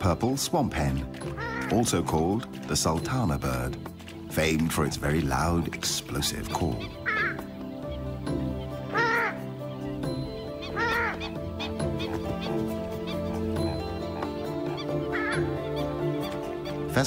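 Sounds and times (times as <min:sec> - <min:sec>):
background music: 0:00.0 - 0:17.0
bird honking calls: 0:01.2 - 0:02.0, 0:05.6 - 0:17.0.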